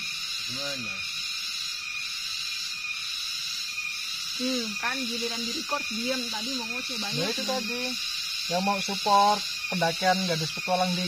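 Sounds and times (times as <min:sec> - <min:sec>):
high-pitched chorus of calling animals: 0:04.2 - 0:11.0.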